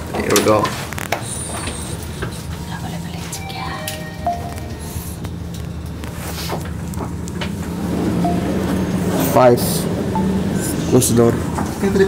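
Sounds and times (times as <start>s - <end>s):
elevator car humming: 2.4s - 12.0s.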